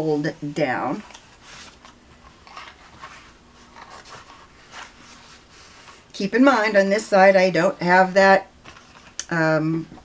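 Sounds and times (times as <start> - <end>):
cardboard and paper rustling: 0.8 - 6.1, 8.6 - 9.2.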